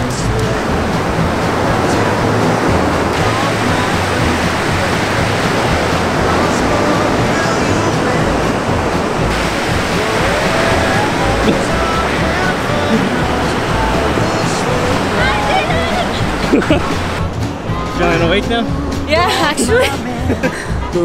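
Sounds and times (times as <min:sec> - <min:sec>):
ocean surf breaking: 0:00.0 - 0:20.8.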